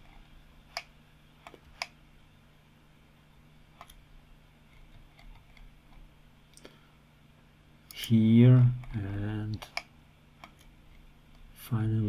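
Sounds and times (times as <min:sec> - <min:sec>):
computer mouse clicks: 0:00.0 - 0:02.0, 0:03.7 - 0:04.0, 0:04.7 - 0:06.7, 0:08.8 - 0:11.4.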